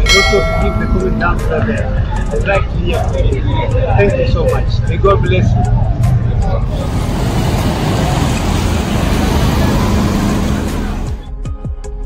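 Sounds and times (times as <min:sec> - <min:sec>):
loud road traffic noise: 0:05.6 - 0:11.3.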